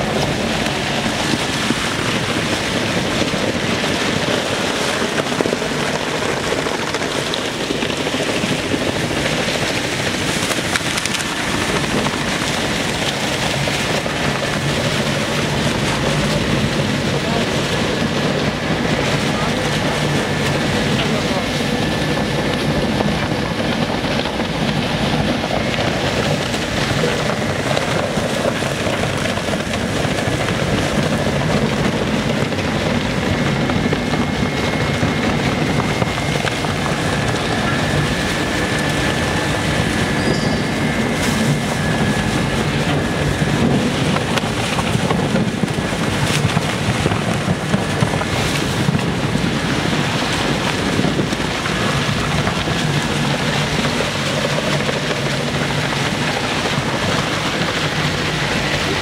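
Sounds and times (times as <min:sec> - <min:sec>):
sharp crackles: 0:00.0 - 0:59.0.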